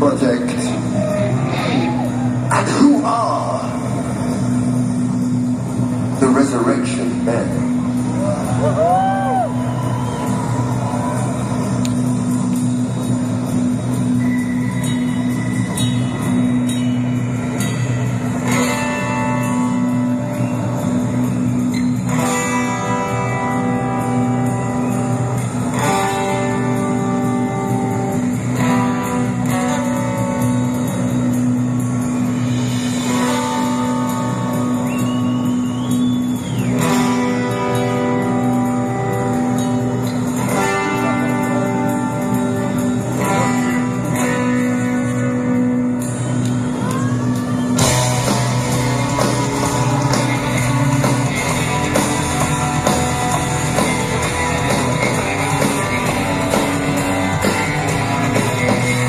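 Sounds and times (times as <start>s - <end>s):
rock band low drone: 0.0s - 59.0s
heavy metal band chord: 47.8s - 59.0s.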